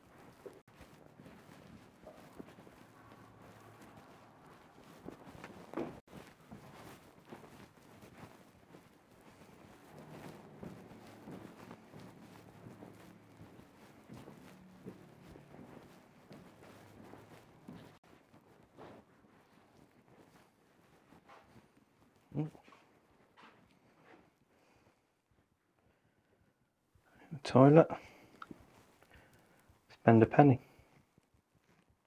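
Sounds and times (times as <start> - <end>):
footsteps on hard floor: 0.0 - 24.3.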